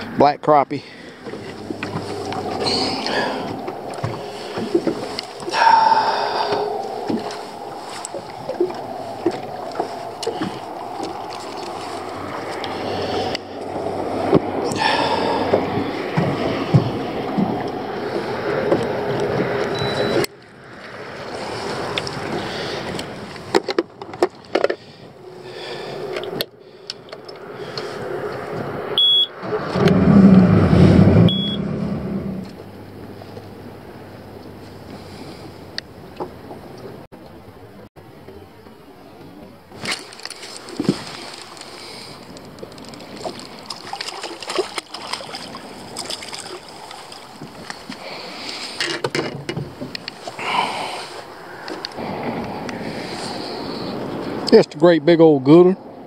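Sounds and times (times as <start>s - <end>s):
water lapping at hull: 0.0s - 31.6s, 32.4s - 54.6s
low rumble: 0.8s - 23.5s, 25.2s - 37.9s
wind buffeting microphone: 0.8s - 37.1s, 49.4s - 54.5s.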